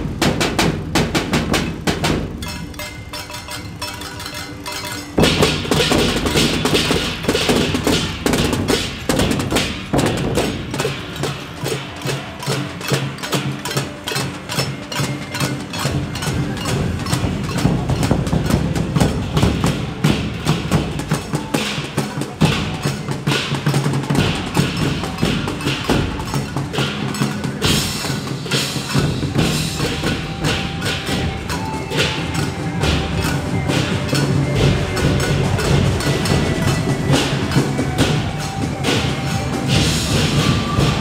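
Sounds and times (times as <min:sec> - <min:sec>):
drums gongs and cymbals: 0:00.0 - 0:41.0.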